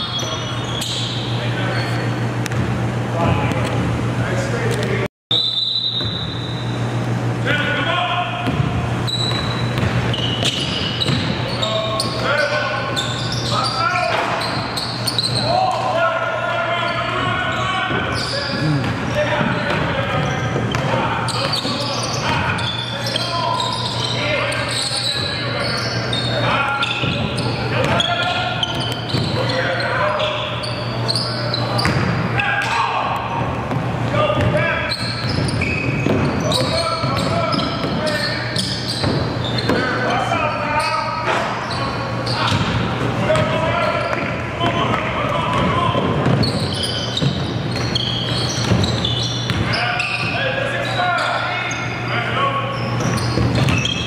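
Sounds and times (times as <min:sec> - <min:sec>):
referee's whistle: 0:05.3 - 0:06.7, 0:09.1 - 0:11.8
people calling out: 0:15.4 - 0:19.3.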